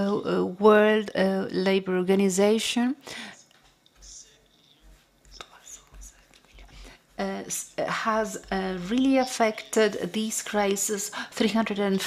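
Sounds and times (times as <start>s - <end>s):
faint breath: 3.0s - 3.5s.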